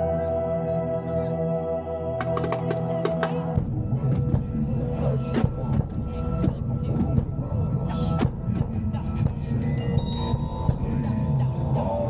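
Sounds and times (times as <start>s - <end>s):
glockenspiel notes: 9.3s - 11.0s.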